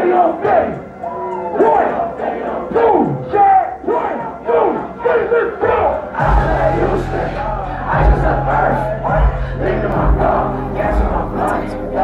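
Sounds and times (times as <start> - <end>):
crowd shouting in unison: 0.0 - 12.0
heavy bass beat: 5.6 - 12.0.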